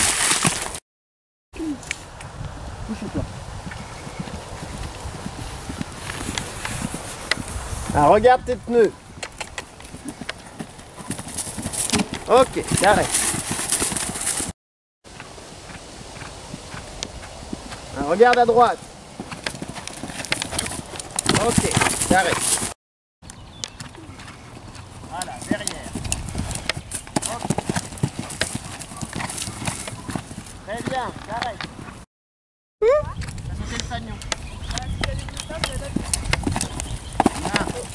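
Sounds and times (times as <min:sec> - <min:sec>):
horse hoofbeats cantering: 0:03.6 - 0:08.1, 0:08.8 - 0:14.5, 0:15.1 - 0:22.8, 0:23.4 - 0:32.0, 0:34.0 - 0:37.9.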